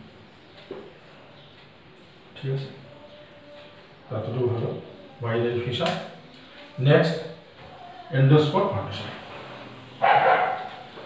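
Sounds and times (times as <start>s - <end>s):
dog barking: 10.0s - 10.8s.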